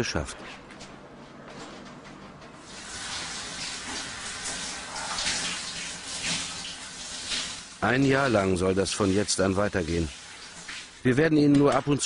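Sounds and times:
shower water spraying: 2.6s - 11.2s.

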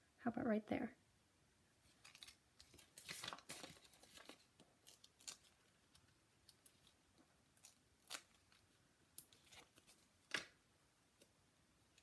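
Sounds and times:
paper rustling and clicking: 1.9s - 7.0s, 9.2s - 10.6s.

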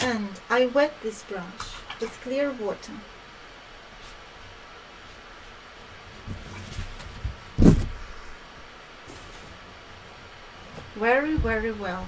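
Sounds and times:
steady room hiss: 0.0s - 12.0s
board handling rubbing rumbles: 6.1s - 8.3s.

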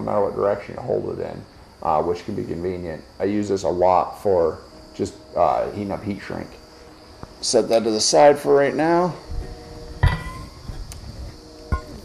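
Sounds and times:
torch flame hiss: 0.0s - 12.0s
torch knock with metallic ring: 10.0s - 10.7s.

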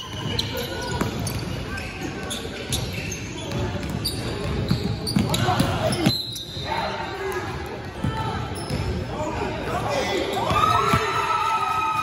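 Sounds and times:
players' voices: 0.0s - 12.0s.

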